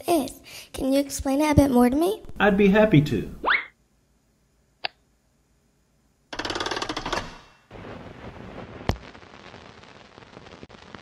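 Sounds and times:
film projector clatter and hiss: 0:06.3 - 0:07.7.

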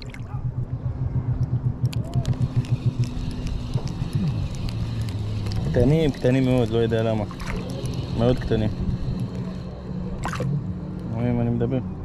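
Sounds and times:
fishing reel cranking: 0:01.8 - 0:11.4.

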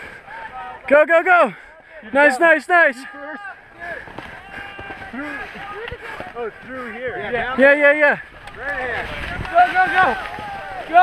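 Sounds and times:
faint voices calling: 0:00.0 - 0:11.0.

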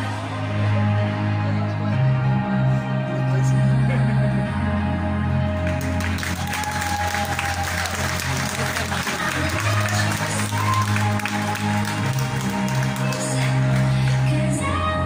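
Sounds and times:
slow electronic music: 0:00.0 - 0:15.0
audience applauding: 0:05.6 - 0:14.5.

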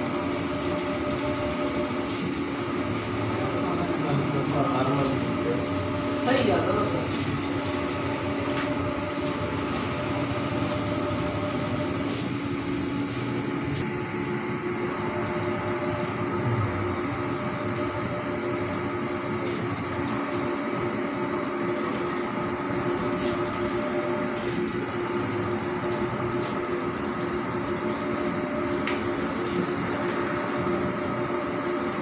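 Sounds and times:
printer carriage mechanical hum: 0:00.0 - 0:32.0.

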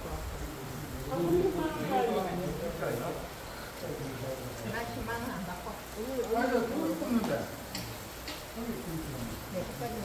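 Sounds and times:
people chatting: 0:00.0 - 0:07.6, 0:08.5 - 0:10.0.

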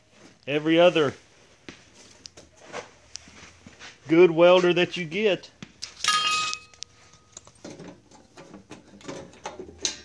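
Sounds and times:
handling noises with clicks and knocks: 0:01.6 - 0:10.0
sharp metallic clink ringing: 0:06.0 - 0:06.8.

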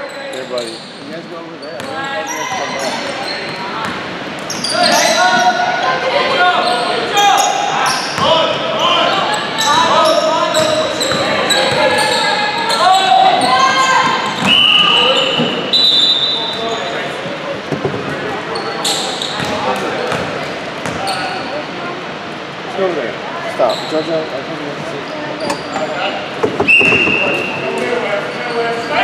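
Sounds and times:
sneaker squeaks: 0:00.0 - 0:05.7, 0:06.4 - 0:17.2, 0:17.9 - 0:21.6, 0:23.6 - 0:24.3, 0:25.1 - 0:29.0
players calling out: 0:01.8 - 0:17.6.

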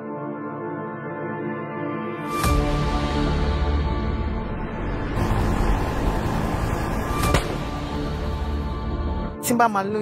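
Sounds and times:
faint musical drone: 0:01.8 - 0:09.8
vehicle rumbling: 0:04.7 - 0:09.3.

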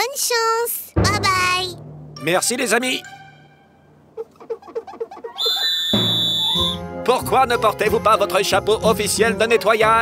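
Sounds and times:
short squeaky notes: 0:03.0 - 0:06.8
long shrill whistle: 0:05.4 - 0:06.8.

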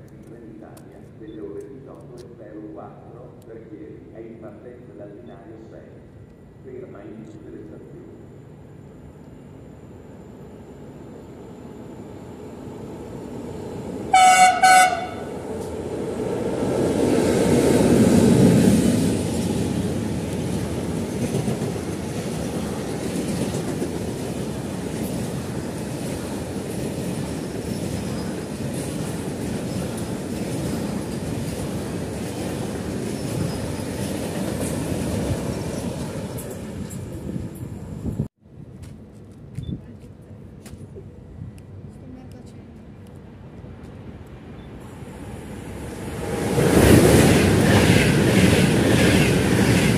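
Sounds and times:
freight train rumbling: 0:00.0 - 0:49.9
train horn blast: 0:14.1 - 0:15.4.

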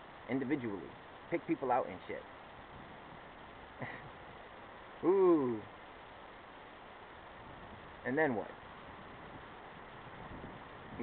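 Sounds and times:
faint background noise: 0:00.0 - 0:11.0.

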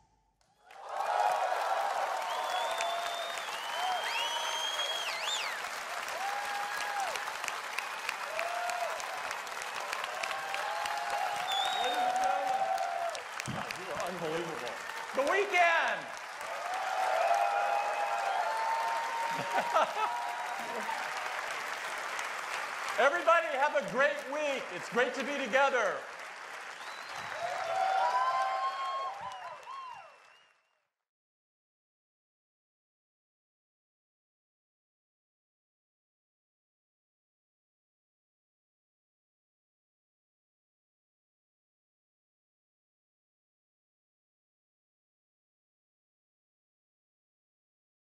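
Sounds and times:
audience applauding and cheering: 0:00.6 - 0:30.7
whoops and whistles: 0:02.2 - 0:05.6, 0:11.4 - 0:12.3, 0:26.8 - 0:30.6.

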